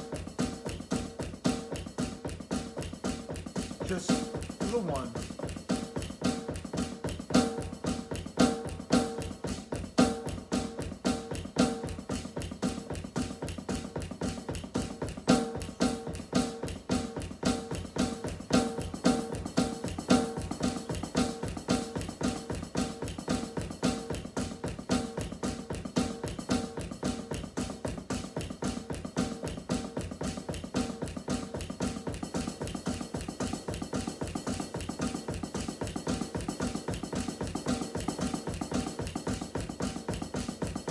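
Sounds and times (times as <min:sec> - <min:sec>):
electronic drum kit drumming: 0:00.0 - 0:40.9.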